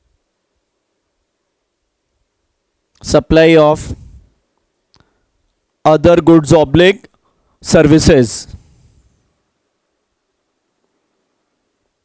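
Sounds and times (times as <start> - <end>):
man speaking: 3.0 - 4.0, 5.8 - 8.6.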